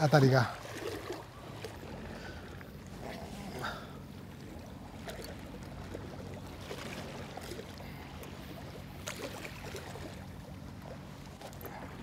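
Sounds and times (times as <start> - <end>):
distant boat engine humming: 0.0 - 12.0
seashore ambience: 0.0 - 12.0.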